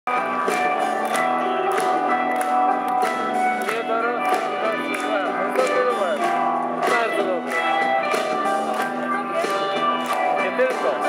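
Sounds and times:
live rock band: 0.1 - 11.0.

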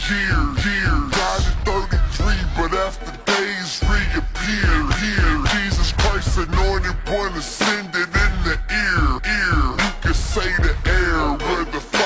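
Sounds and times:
heavy bass beat: 0.0 - 12.0
slowed pitched-down rap vocals: 0.0 - 12.0.

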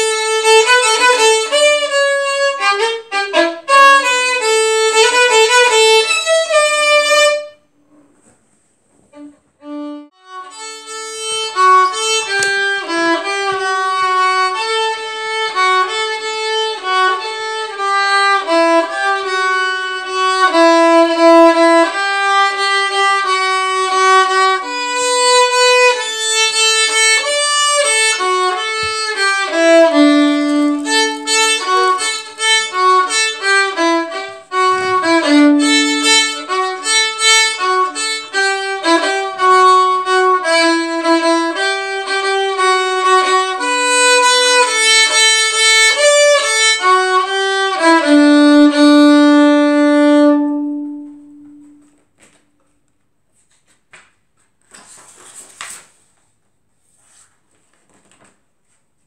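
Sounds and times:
solo violin melody: 0.0 - 7.6, 9.1 - 52.0.

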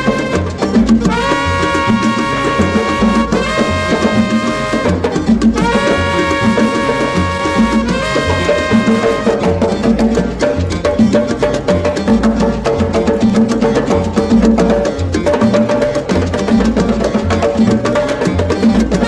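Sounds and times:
pulsing bass line: 0.0 - 19.0.

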